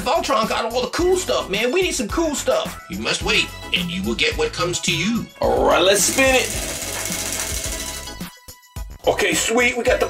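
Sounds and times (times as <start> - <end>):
prize wheel clicking: 5.8 - 8.3.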